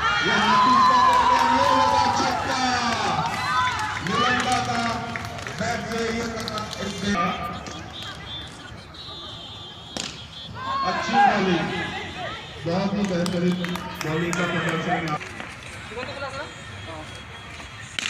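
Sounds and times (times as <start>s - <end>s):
men calling out and chatting: 0.2s - 17.7s
cricket bat striking ball: 9.9s - 10.2s.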